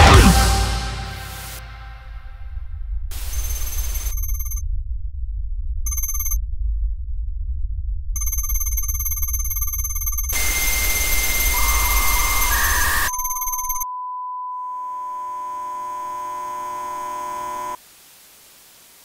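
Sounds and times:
low rumble: 0:00.0 - 0:11.0
loud burst of static: 0:03.1 - 0:04.6, 0:10.3 - 0:13.1, 0:16.9 - 0:19.0
ringing electronic tone: 0:03.1 - 0:04.6, 0:05.9 - 0:06.4, 0:08.2 - 0:17.8
steady electronic beep tone: 0:03.1 - 0:04.6, 0:05.9 - 0:06.4, 0:08.2 - 0:17.8
faint hiss: 0:17.8 - 0:19.0.

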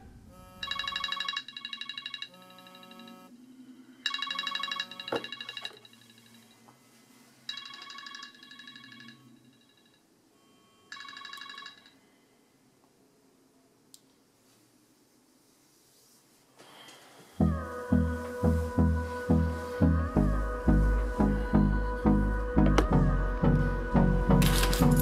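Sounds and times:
phone alarm fast high beeps: 0:00.4 - 0:03.3, 0:04.0 - 0:06.5.

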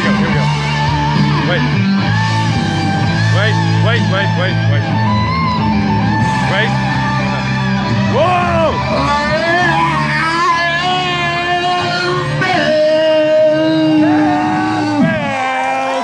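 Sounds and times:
hard rock backing track: 0:00.0 - 0:15.4.

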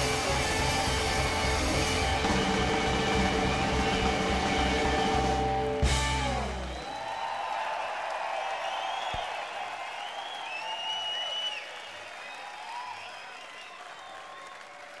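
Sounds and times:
audience applauding: 0:06.3 - 0:15.0
whistles from audience: 0:06.4 - 0:15.0.

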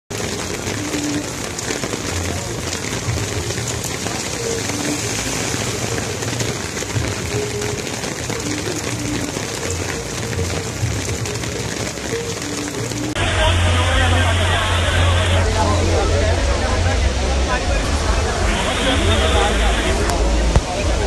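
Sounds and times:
hail and rain on road: 0:00.1 - 0:15.4, 0:17.5 - 0:21.0.

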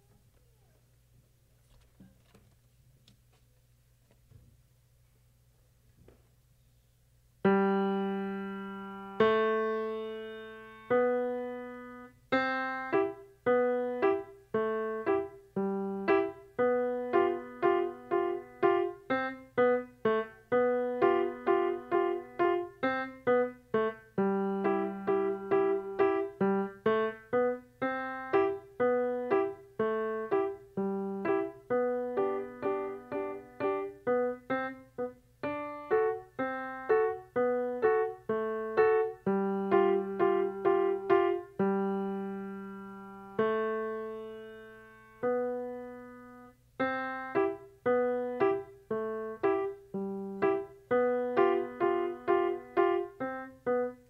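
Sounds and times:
grand piano playing: 0:07.4 - 0:54.0.

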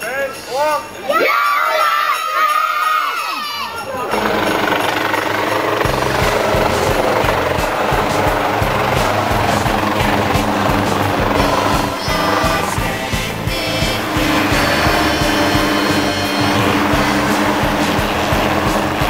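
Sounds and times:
children shouting: 0:01.0 - 0:19.0
helicopter rotor beat: 0:03.9 - 0:19.0
helicopter landing: 0:04.0 - 0:19.0.

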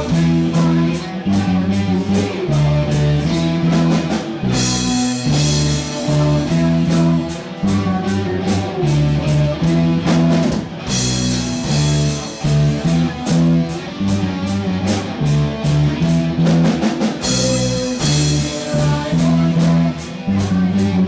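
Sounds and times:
bass line: 0:00.0 - 0:21.0
drum kit with cymbal hits: 0:00.0 - 0:21.0
plucked electric guitar: 0:00.0 - 0:21.0.

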